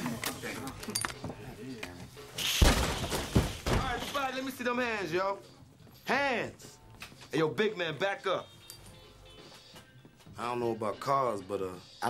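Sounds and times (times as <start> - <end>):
door bursting open with bang: 2.6 - 4.1.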